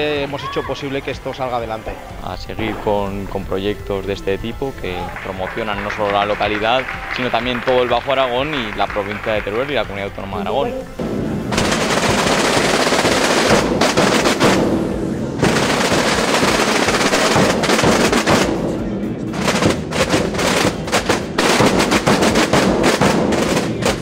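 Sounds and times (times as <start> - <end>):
drum group playing: 1.6 - 24.0.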